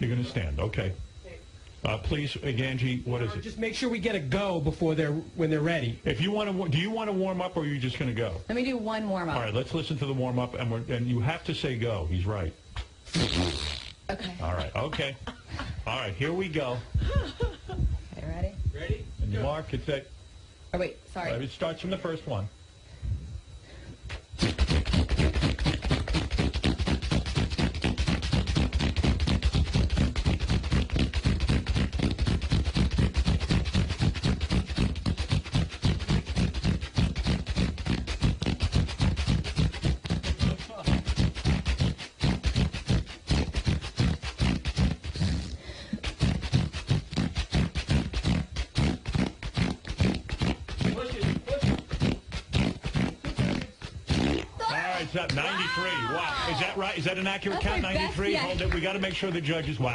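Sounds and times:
rapid queefs: 0:00.0 - 0:20.5, 0:21.2 - 0:59.9.

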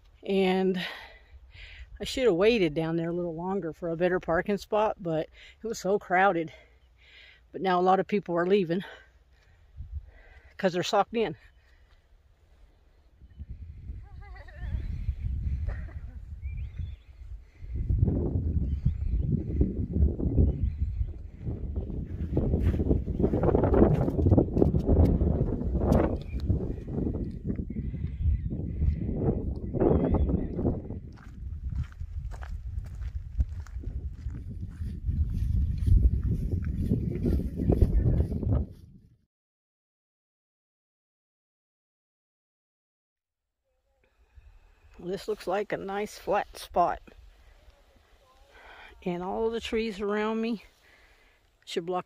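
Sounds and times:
wind buffeting microphone: 0:09.6 - 0:10.3, 0:13.1 - 0:39.2.

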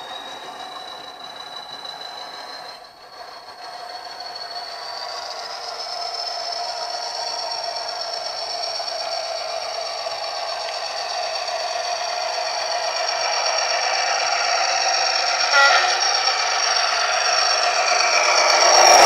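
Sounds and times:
model locomotive engine: 0:00.0 - 0:19.0
wheels running on rails: 0:00.0 - 0:19.0
locomotive horn: 0:15.5 - 0:16.3.

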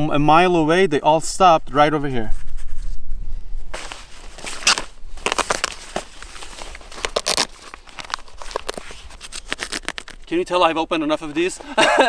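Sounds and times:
armour vest fabric crinkling: 0:03.7 - 0:10.4.

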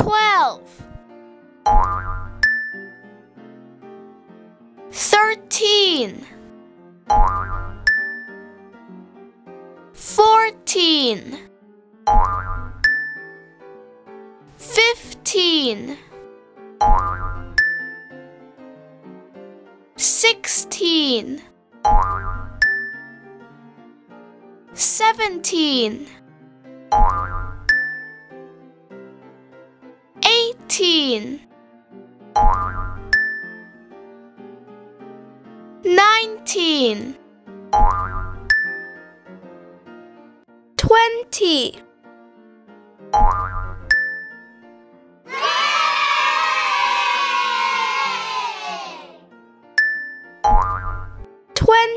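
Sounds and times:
soft children's music: 0:00.0 - 0:51.9
cartoon boing: 0:01.7 - 0:02.4, 0:07.1 - 0:07.9, 0:50.5 - 0:51.2
cartoon boing sound effect: 0:01.7 - 0:02.4, 0:07.1 - 0:07.9, 0:12.1 - 0:12.9, 0:16.8 - 0:17.6, 0:21.9 - 0:22.6, 0:27.0 - 0:27.7, 0:37.8 - 0:38.5, 0:50.5 - 0:51.2
ringing ding: 0:49.8 - 0:50.6.

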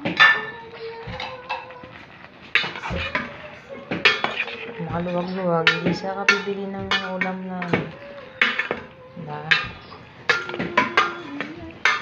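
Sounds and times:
metal spoon scraping a pot: 0:00.0 - 0:12.0.

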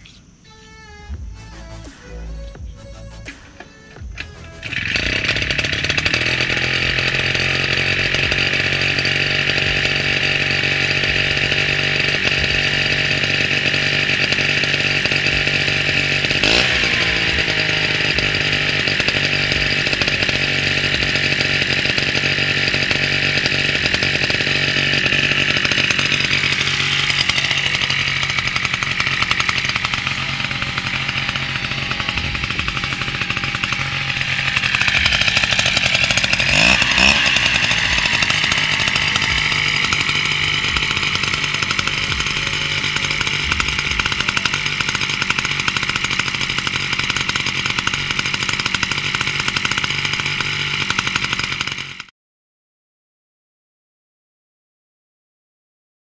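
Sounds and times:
small two-stroke engine running: 0:00.0 - 0:52.1.

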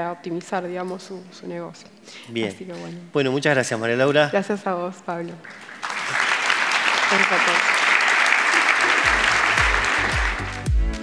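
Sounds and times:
audience applauding: 0:05.4 - 0:11.0
music with deep steady beat: 0:09.1 - 0:11.0.

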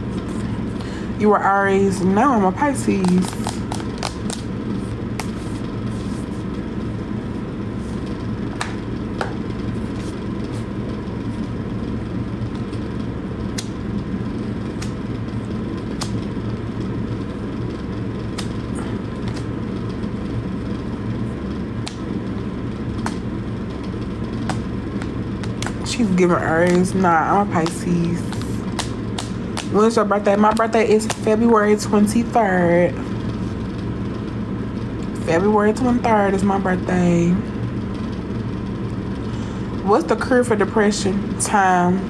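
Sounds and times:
low hum and rumble: 0:00.0 - 0:42.0.

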